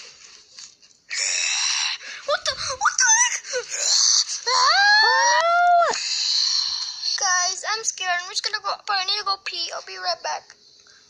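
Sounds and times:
child shrieking: 0:02.4 - 0:06.0.

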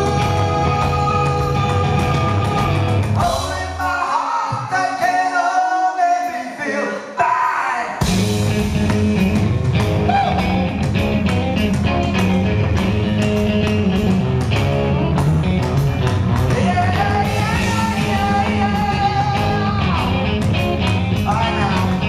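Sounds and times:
distorted electric guitars: 0:00.0 - 0:04.0, 0:08.0 - 0:22.0
bass: 0:00.0 - 0:05.1, 0:08.0 - 0:22.0
drum kit: 0:00.0 - 0:05.2, 0:08.0 - 0:22.0
male lead vocals: 0:00.0 - 0:10.8, 0:16.4 - 0:22.0.

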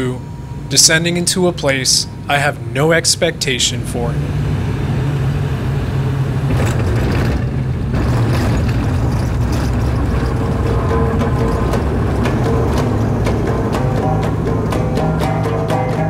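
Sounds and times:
propeller engines droning: 0:00.0 - 0:16.0.

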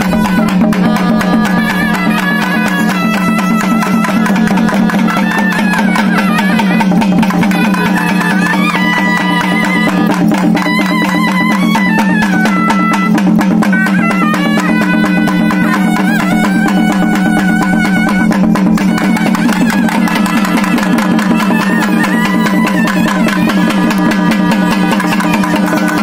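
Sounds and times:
fast frame drum drumming: 0:00.0 - 0:26.0
pipe playing a melody: 0:00.0 - 0:26.0.

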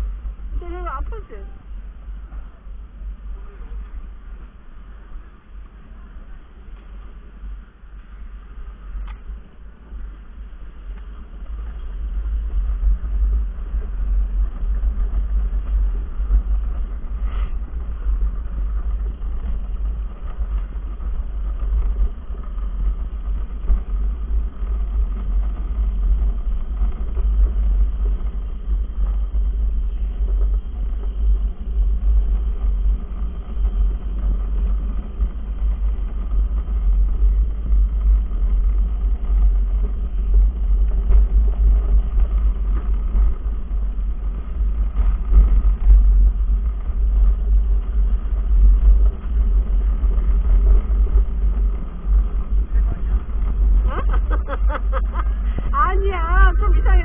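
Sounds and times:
cart wheels rolling on concrete: 0:00.0 - 0:57.0.

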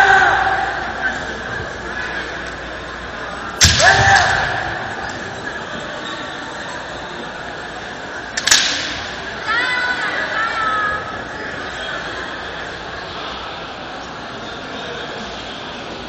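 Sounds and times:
murmur of large sports hall: 0:00.0 - 0:16.0
bamboo sword striking crack: 0:03.6 - 0:04.5, 0:08.4 - 0:09.1.

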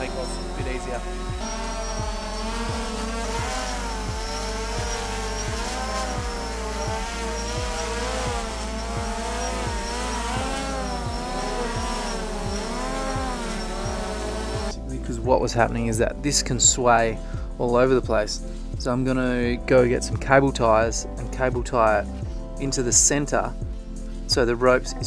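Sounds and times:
drone rotors whining: 0:00.0 - 0:14.8.

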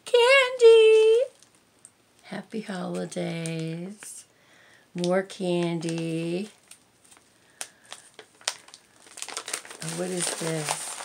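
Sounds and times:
plastic wrapping crinkling: 0:00.6 - 0:01.6, 0:05.0 - 0:11.0.

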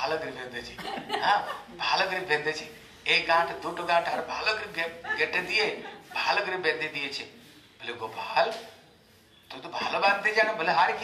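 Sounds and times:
man talking and chuckling: 0:00.4 - 0:02.6, 0:03.5 - 0:07.3.

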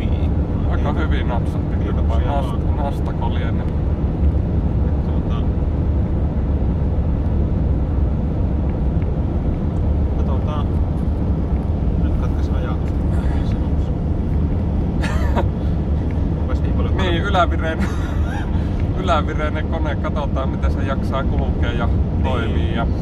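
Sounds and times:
van engine and tyres droning: 0:00.0 - 0:23.0.

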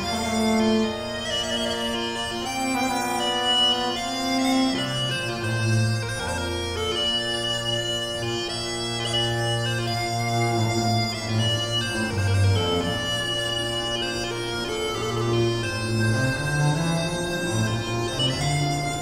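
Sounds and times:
bagpipe melody over drone: 0:00.0 - 0:19.0.

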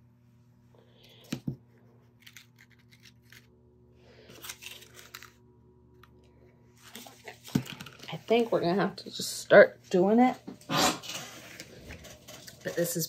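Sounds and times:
faint steady hum: 0:00.0 - 0:13.0
paper rustling: 0:04.3 - 0:05.4.

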